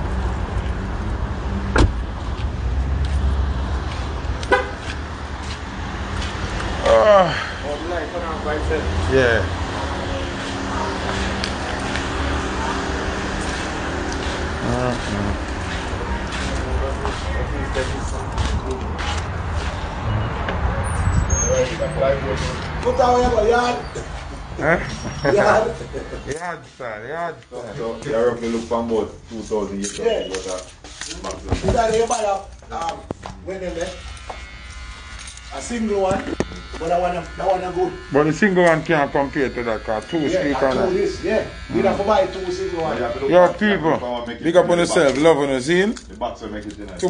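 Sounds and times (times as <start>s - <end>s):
muffled voices: 6.9s - 19.7s
man talking: 14.6s - 15.5s, 24.6s - 34.0s, 35.5s - 47.0s.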